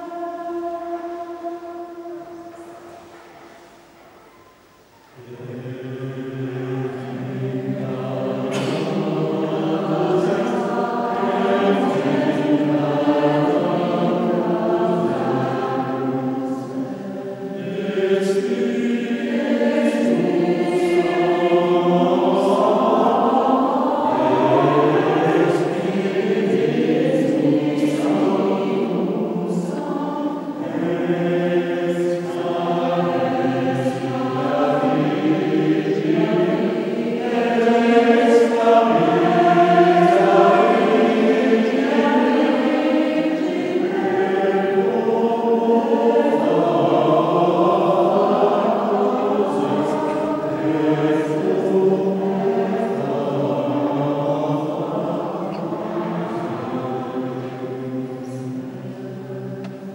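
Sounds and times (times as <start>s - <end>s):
mixed choir singing: 0.0s - 59.9s.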